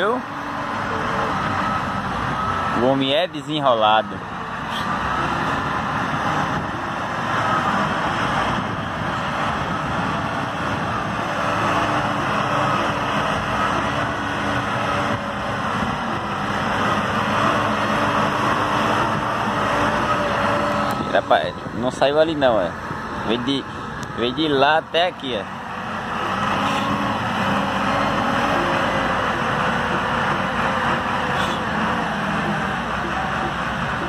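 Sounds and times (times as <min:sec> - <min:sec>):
tractor diesel engine running: 0:00.0 - 0:34.0.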